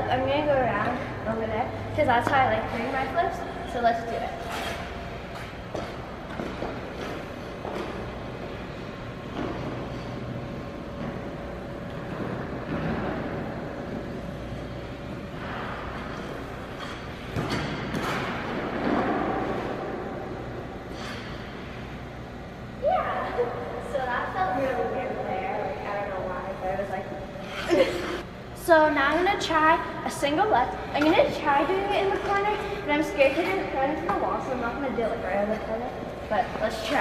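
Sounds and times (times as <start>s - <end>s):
steady background hum: 0.0s - 37.0s
skate blades scraping ice: 3.9s - 8.5s.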